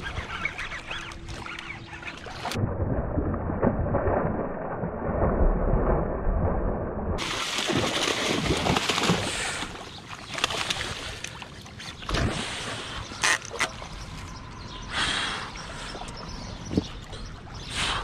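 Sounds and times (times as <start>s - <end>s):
fish splashing at water surface: 7.2s - 11.2s.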